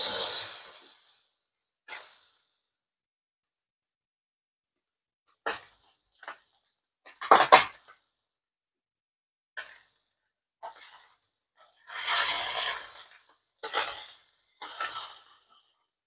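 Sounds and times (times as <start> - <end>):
fish sizzling in hot oil: 0.0 - 1.3, 11.6 - 15.7.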